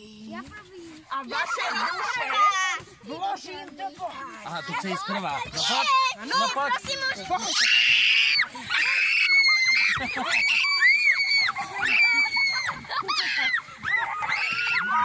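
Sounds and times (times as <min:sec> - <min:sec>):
children shrieking and squealing: 0:01.3 - 0:02.9, 0:04.9 - 0:15.0.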